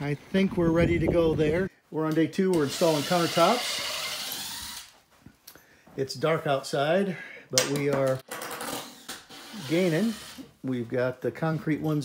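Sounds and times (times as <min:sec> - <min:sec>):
cordless drill running: 0:02.6 - 0:04.9, 0:08.8 - 0:10.5.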